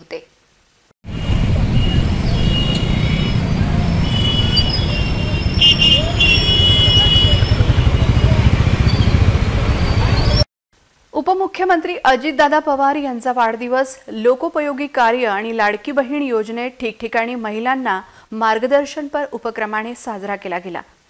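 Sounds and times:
horns honking: 0:01.1 - 0:10.4
motorcycle engines rumbling: 0:01.1 - 0:10.5
voices: 0:04.5 - 0:08.8.

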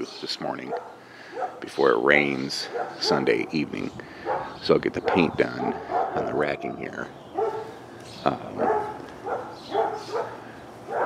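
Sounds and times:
dog calling: 0:00.6 - 0:01.7, 0:02.6 - 0:03.5, 0:04.1 - 0:07.8, 0:08.4 - 0:11.0.

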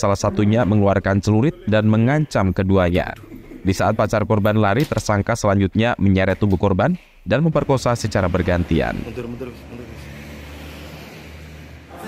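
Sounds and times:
vehicle engine humming: 0:08.0 - 0:12.0.

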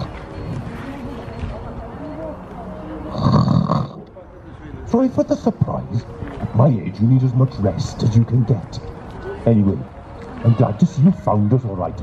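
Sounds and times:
loud snore: 0:03.1 - 0:04.0.

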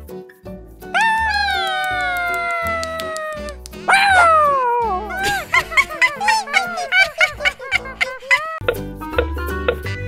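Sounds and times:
cartoon character wailing: 0:01.0 - 0:07.4
background music with steady beat: 0:08.6 - 0:10.0.

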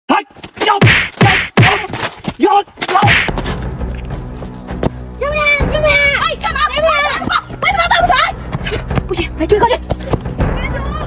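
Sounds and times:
sharp whacks: 0:00.7 - 0:01.9, 0:02.9 - 0:03.4.

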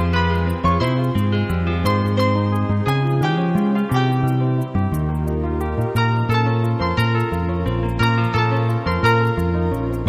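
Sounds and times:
keyboard-led background music: 0:00.0 - 0:10.0
light ticking beat: 0:00.0 - 0:10.0
low bass notes: 0:00.0 - 0:10.0.

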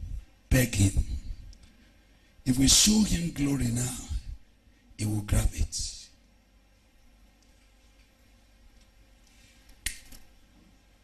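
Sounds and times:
man speaking: 0:00.5 - 0:01.2, 0:02.5 - 0:04.3, 0:05.0 - 0:06.1.

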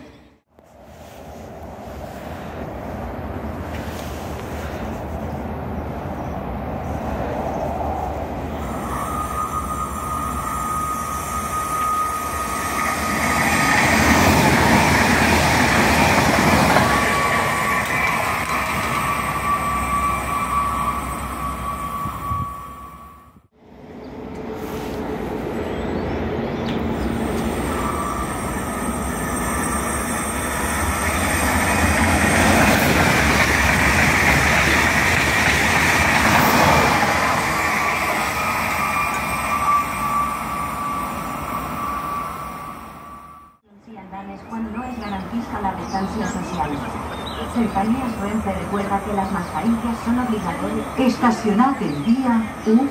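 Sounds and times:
trains passing at speed: 0:00.0 - 0:52.9
steady high whine: 0:08.4 - 0:14.2.

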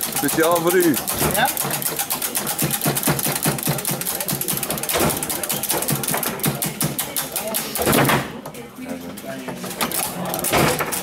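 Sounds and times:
foosball plastic clacks: 0:00.0 - 0:08.4.

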